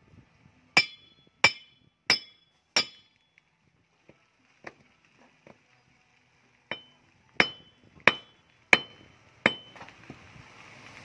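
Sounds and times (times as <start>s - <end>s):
steel tube striking rock: 0.8s - 3.3s, 6.7s - 9.9s.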